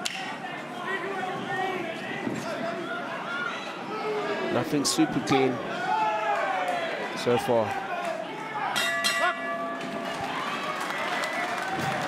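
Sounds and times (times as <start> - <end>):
arena crowd noise: 0.0 - 12.0
boxing ring bell: 8.8 - 10.2.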